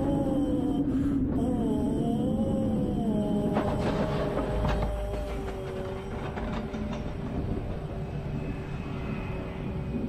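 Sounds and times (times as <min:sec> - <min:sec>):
roller coaster train rumbling: 0:00.0 - 0:10.0.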